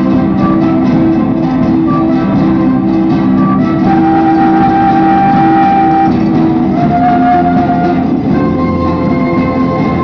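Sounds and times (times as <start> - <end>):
folk ensemble playing: 0.0 - 10.0.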